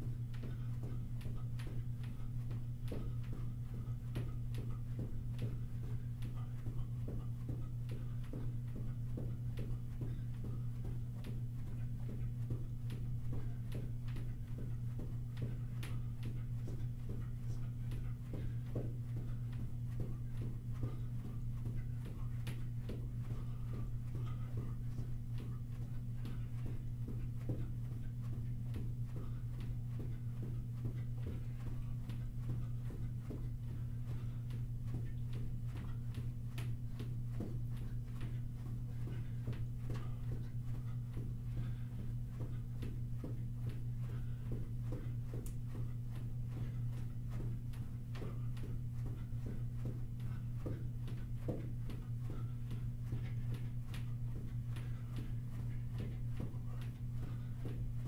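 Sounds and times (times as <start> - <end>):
footfalls jogging on carpet: 0.0 - 58.0
steady low hum: 0.0 - 58.0.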